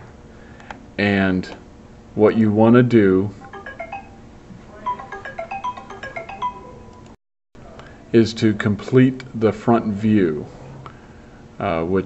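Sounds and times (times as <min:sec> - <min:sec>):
electronic ringtone tune: 0:03.4 - 0:07.2.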